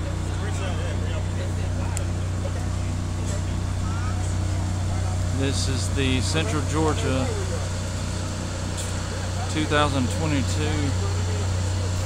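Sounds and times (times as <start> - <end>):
diesel engine idling: 0.0 - 12.0
faint voices: 0.0 - 12.0.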